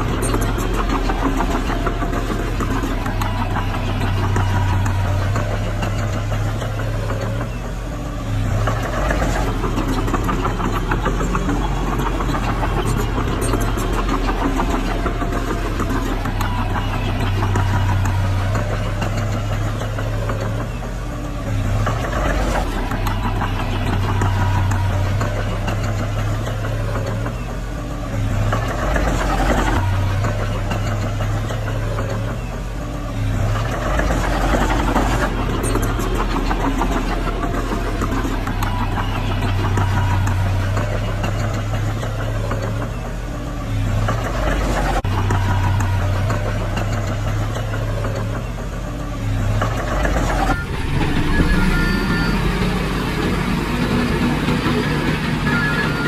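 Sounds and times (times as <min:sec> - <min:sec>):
bulldozer diesel engine: 0:00.0 - 0:56.0.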